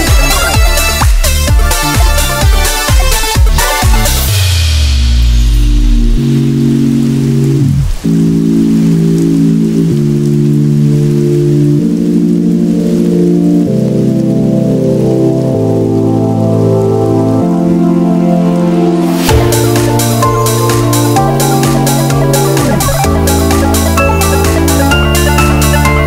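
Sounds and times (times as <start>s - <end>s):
sustained synth chords: 0.0s - 26.0s
falling synth sweep: 18.0s - 26.0s.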